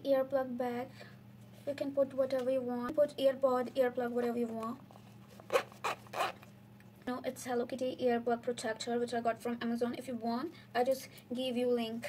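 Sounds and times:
zipper pulled shut: 5.4s - 6.5s.

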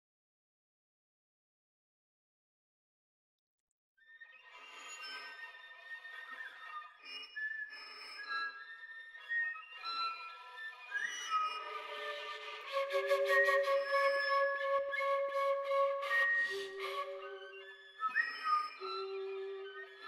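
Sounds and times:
bowed violin: 9.2s - 20.0s
soft flute tones: 11.4s - 20.0s
person whistling: 12.8s - 17.6s.

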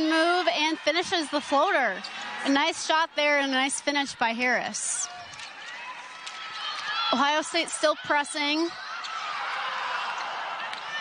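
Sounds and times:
crowd hum: 0.0s - 11.0s
sneaker squeaks: 2.0s - 2.5s, 8.6s - 9.6s.

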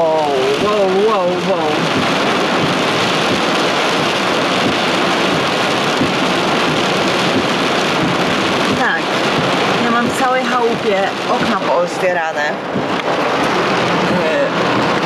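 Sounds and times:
heavy rain on car roof: 0.0s - 15.0s.

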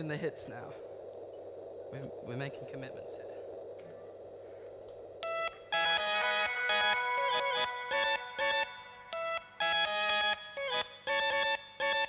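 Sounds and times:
amplifier hum: 0.0s - 12.0s
electric guitar chords: 5.2s - 12.0s.

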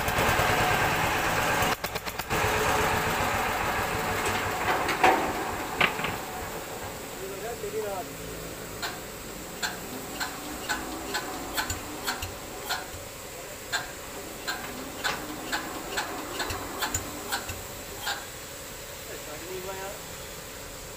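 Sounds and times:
sharp clicks: 9.6s - 13.1s, 13.7s - 18.2s.

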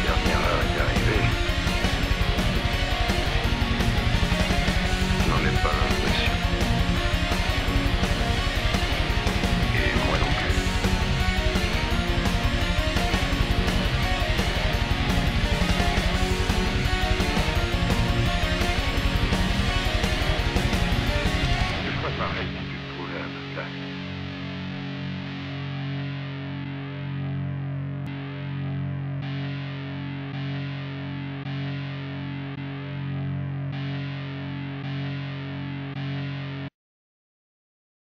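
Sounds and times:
drums: 0.0s - 23.6s
sustained low chord: 0.0s - 29.2s
distorted electric guitar: 0.0s - 36.7s.

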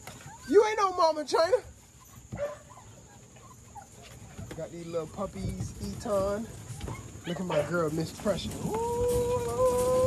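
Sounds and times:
puppies whimpering: 0.0s - 10.0s.

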